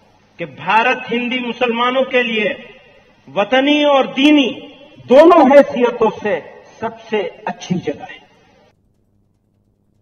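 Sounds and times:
faint room hum: 0.0s - 10.0s
man speaking: 0.4s - 8.3s.

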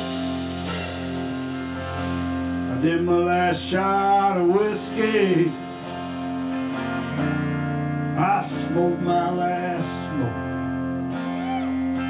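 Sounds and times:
electric guitar lead line bending: 0.0s - 12.0s
live rock band playing: 0.0s - 12.0s.

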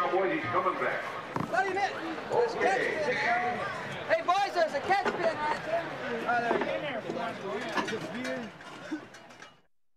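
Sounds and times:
background chatter: 0.0s - 9.6s.

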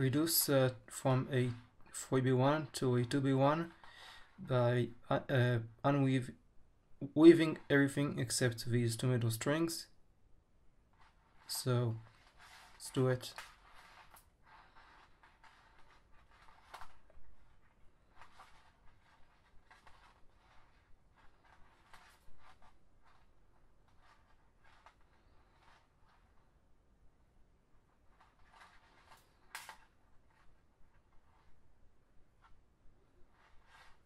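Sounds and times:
plastic strings scratching and ticking: 0.0s - 6.2s, 10.9s - 26.6s, 27.7s - 34.0s.

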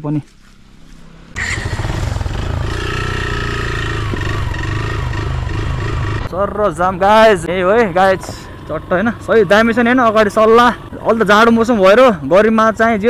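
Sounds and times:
motorcycle engine running: 0.3s - 13.0s.

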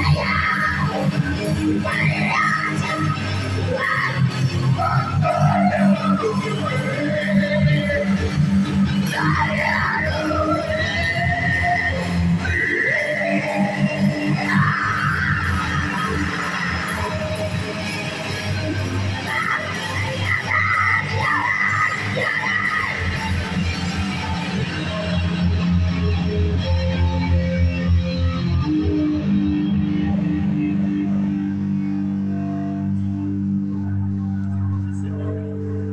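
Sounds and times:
electric guitar chords: 0.0s - 35.9s
wailing electric guitar line: 0.0s - 35.9s.

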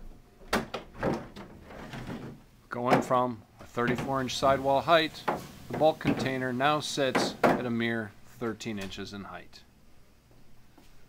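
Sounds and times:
plastic knocks clattering: 0.4s - 3.2s.

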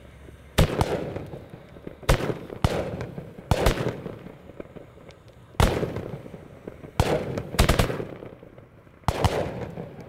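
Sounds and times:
fireworks bangs: 0.6s - 10.0s.

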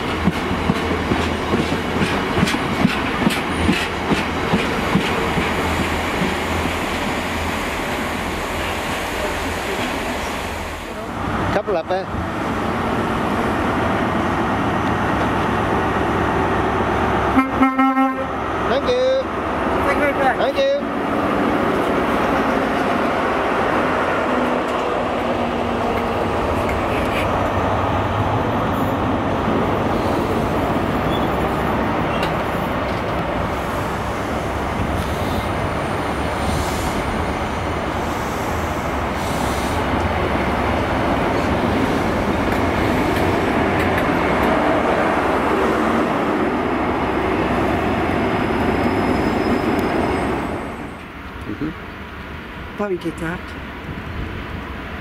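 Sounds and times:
diesel train running past: 0.0s - 55.0s
train horn blasts: 17.3s - 18.3s.

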